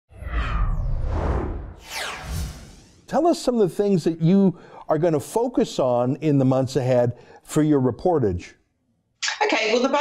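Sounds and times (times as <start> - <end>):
deep rumble: 0.1 - 3.1
swish sweeping down in pitch: 0.1 - 3.1
whoosh sound effect: 0.1 - 3.1.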